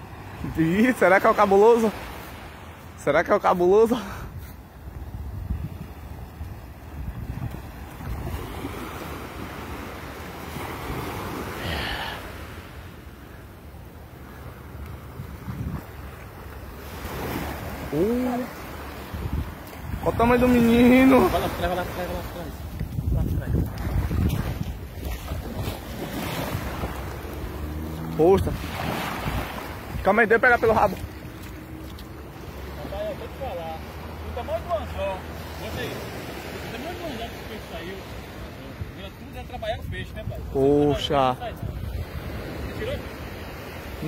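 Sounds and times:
surf washing over sand: 0.0s - 44.0s
wind buffeting the microphone: 4.2s - 8.8s, 15.1s - 16.2s, 17.2s - 31.4s, 38.7s - 43.0s
small surf breaking: 14.2s - 33.4s.

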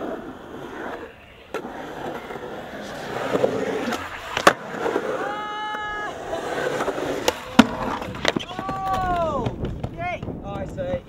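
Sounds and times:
skateboard wheels rolling on concrete: 0.0s - 11.0s
skateboard clacks: 3.2s - 10.8s.

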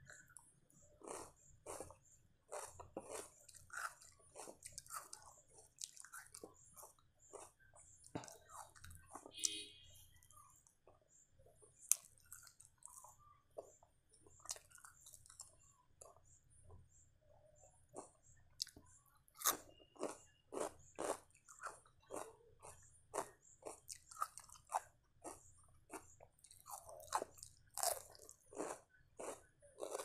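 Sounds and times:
wet chewing and lip-smacking: 0.1s - 9.3s, 11.8s - 16.2s, 17.9s - 30.0s.

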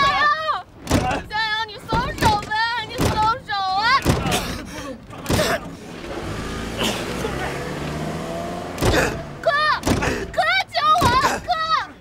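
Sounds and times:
car engine humming while driving: 5.0s - 10.4s.

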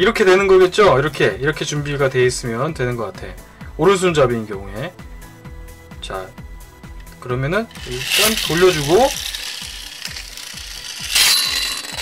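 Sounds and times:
spinning top rattling: 7.7s - 12.0s
spinning top scraping on plastic: 7.7s - 12.0s.

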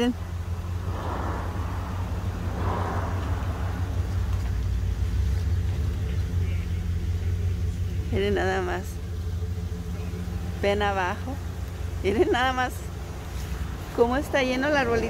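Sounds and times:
low outdoor rumble: 0.0s - 15.0s
hissing noise: 0.5s - 6.1s.

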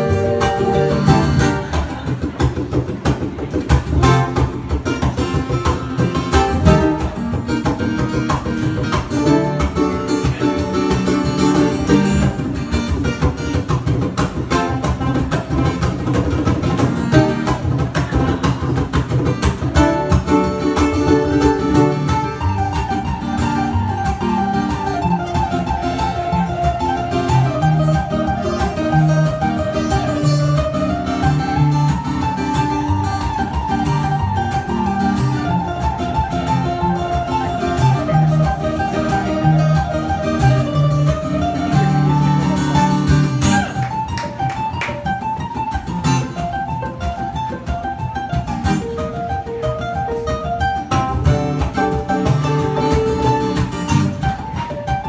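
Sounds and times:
acoustic guitar chords: 0.0s - 55.0s
ukulele melody: 0.0s - 55.0s.

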